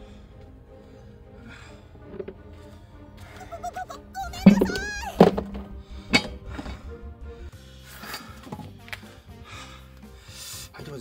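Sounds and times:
background music: 0.0s - 11.0s
heavy comic thuds: 4.4s - 7.5s.

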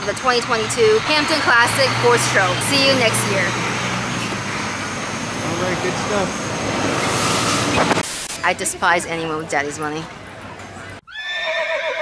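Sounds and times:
low background hubbub: 0.0s - 11.1s
horse whinnying: 11.1s - 12.0s.

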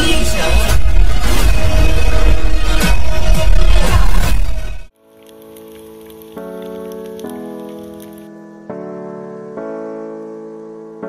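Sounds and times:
keyboard chords background music: 4.9s - 11.0s.

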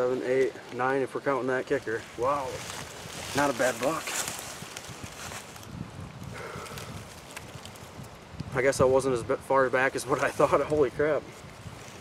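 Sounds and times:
dry leaves rustling: 0.0s - 8.4s, 9.8s - 12.0s.

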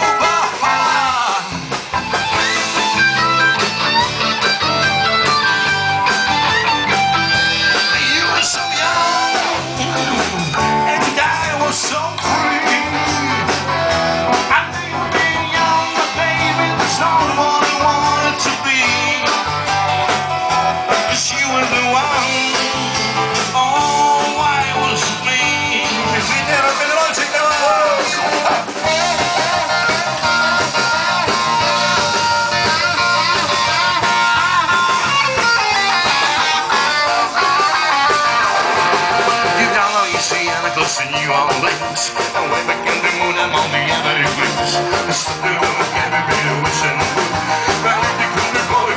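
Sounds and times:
drum kit: 0.0s - 48.9s
electric bass: 0.0s - 48.9s
electric guitar melody: 0.0s - 48.9s.

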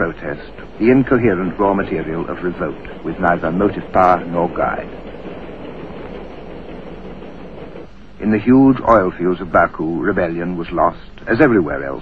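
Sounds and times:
hiss: 0.0s - 5.0s
mechanical rumble: 0.0s - 12.0s.

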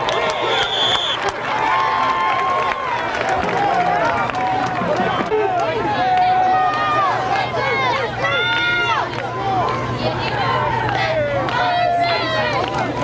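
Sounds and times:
crowd shouting: 0.0s - 13.0s
long drawn-out shout: 0.0s - 13.0s.

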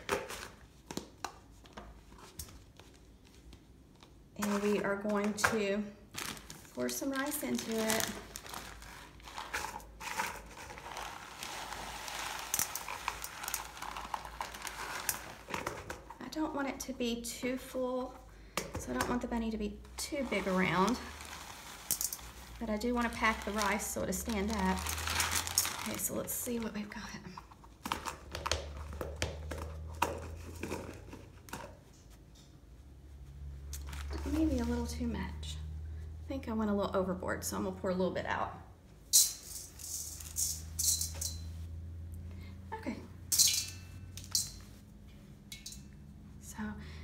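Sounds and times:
plastic bag crinkling: 6.0s - 16.0s, 20.0s - 26.8s, 33.7s - 35.0s
rice pouring: 7.6s - 15.7s, 20.0s - 26.2s.

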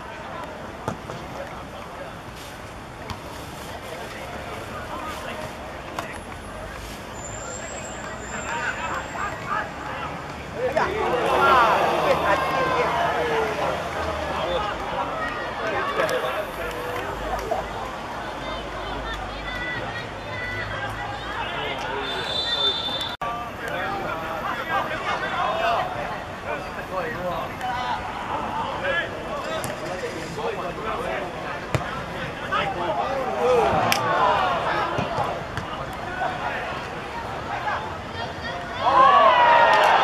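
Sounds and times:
players calling out: 7.2s - 40.0s
referee's whistle blast: 22.0s - 23.2s.

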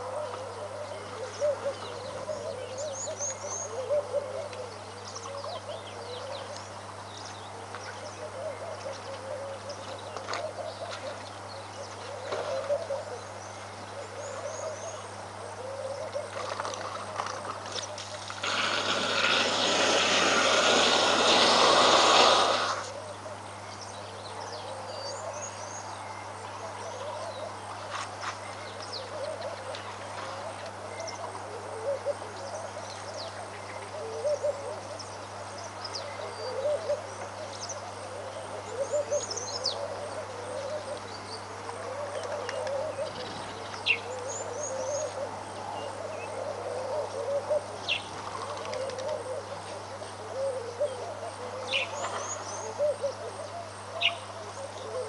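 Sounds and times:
low repeated bird calls: 28.5s - 55.0s.

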